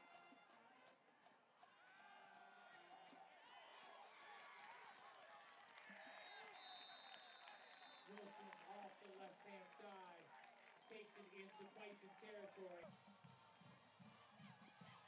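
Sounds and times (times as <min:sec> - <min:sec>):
long steady whistle: 0:06.0 - 0:08.1.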